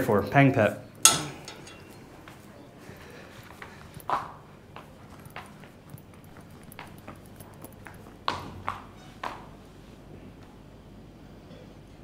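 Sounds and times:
footsteps on hard floor: 0:03.4 - 0:09.5.

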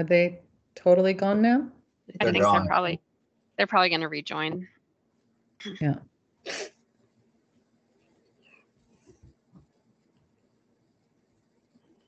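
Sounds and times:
person sneezing: 0:02.2 - 0:02.7, 0:06.5 - 0:06.7.

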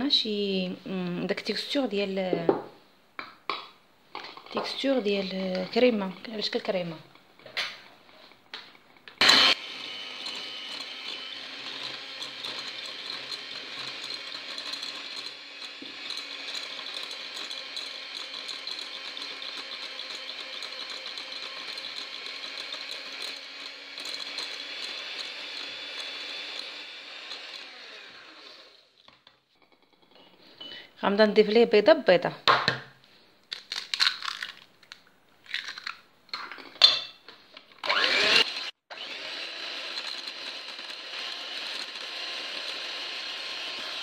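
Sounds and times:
electric hand mixer motor whine: 0:09.2 - 0:29.0, 0:37.8 - 0:44.0.

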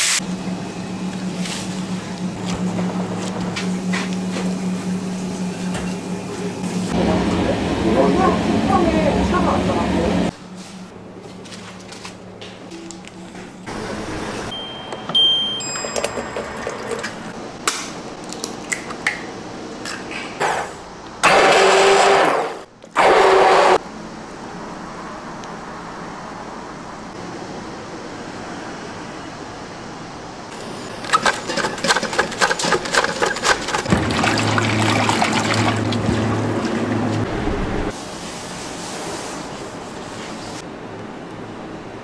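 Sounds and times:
steady low hum: 0:00.2 - 0:14.9
immersion blender whirring: 0:21.2 - 0:23.8
cabbage shredded on mandoline: 0:31.0 - 0:34.1.

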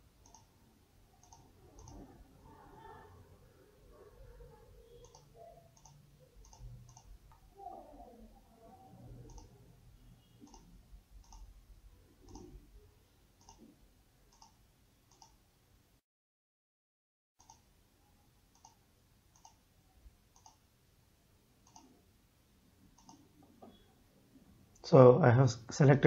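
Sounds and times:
faint low background noise: 0:00.0 - 0:16.0, 0:17.4 - 0:26.0
faint computer mouse clicks: 0:00.2 - 0:00.5, 0:01.2 - 0:02.0, 0:05.0 - 0:07.4, 0:09.3 - 0:09.5, 0:10.4 - 0:11.5, 0:12.2 - 0:12.5, 0:13.4 - 0:13.7, 0:14.3 - 0:15.4, 0:17.4 - 0:17.6, 0:18.5 - 0:19.6, 0:20.4 - 0:20.6, 0:21.6 - 0:21.9, 0:23.0 - 0:23.8.

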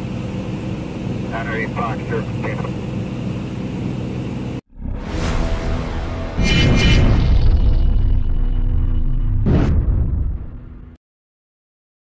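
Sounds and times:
aircraft engine drone: 0:00.0 - 0:09.4.

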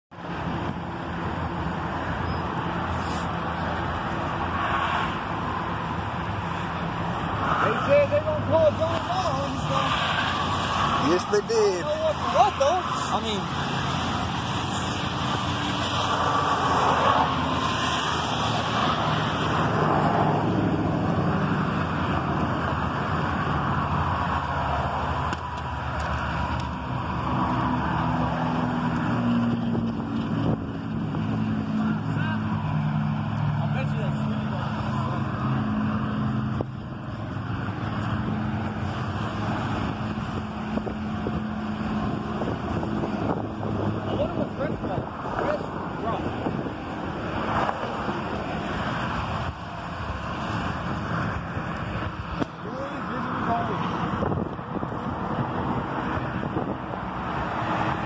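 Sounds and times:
passing cars rushing: 0:00.1 - 0:58.0.

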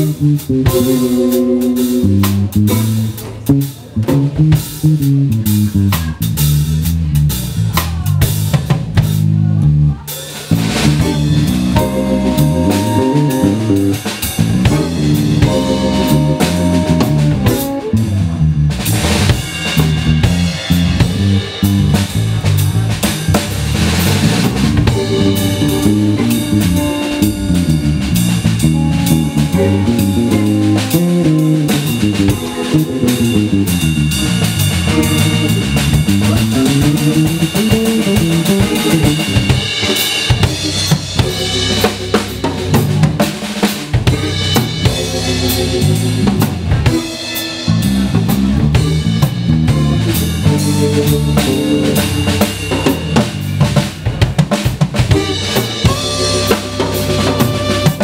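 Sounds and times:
electric guitar: 0:00.0 - 0:06.2, 0:10.6 - 0:58.0
drum kit playing: 0:00.0 - 0:58.0
electric bass lines: 0:00.0 - 0:58.0.

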